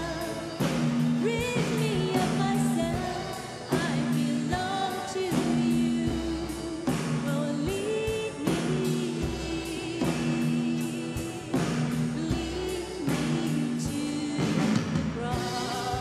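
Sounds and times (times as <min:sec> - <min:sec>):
steady beat: 0:00.0 - 0:16.0
sustained keyboard chords: 0:00.0 - 0:16.0
woman singing lead vocal: 0:00.0 - 0:16.0.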